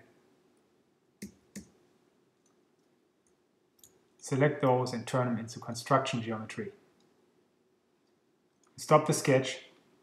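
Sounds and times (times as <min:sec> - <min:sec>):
computer mouse clicks: 0:01.2 - 0:01.8.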